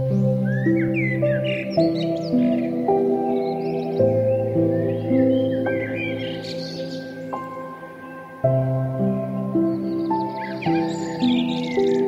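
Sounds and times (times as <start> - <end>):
slow relaxation music: 0.0 - 12.0
small birds chirping: 0.0 - 12.0.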